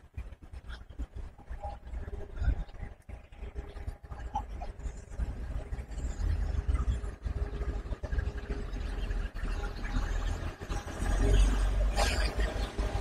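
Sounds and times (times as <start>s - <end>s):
wind buffeting microphone: 0.0s - 13.0s
road traffic passing: 4.7s - 13.0s.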